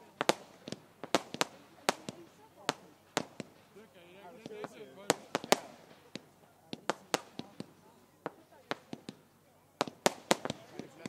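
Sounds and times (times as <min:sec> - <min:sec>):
fireworks bangs and cracks: 0:00.0 - 0:11.0.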